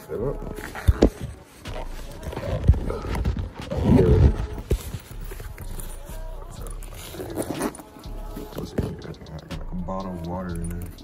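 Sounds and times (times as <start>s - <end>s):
fabric bag rustling: 0.4s - 8.0s.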